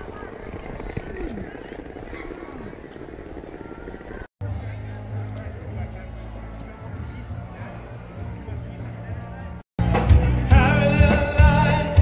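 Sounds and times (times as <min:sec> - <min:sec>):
voices of passers-by: 0:00.0 - 0:10.6.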